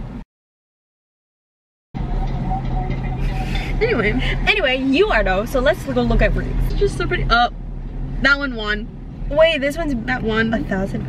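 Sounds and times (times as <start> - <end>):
car interior engine hum: 2.0 - 11.0
women talking: 3.6 - 7.5, 8.2 - 11.0.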